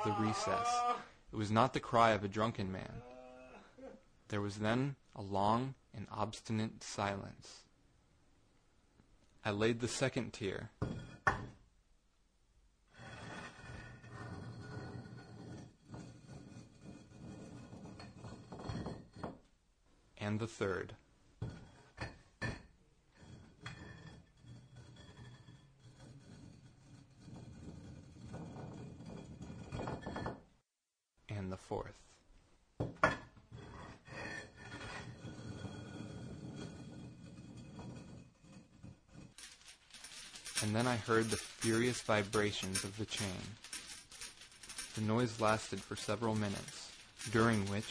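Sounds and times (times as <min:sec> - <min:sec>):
trowel scraping stone and mortar: 0:33.5 - 0:47.9.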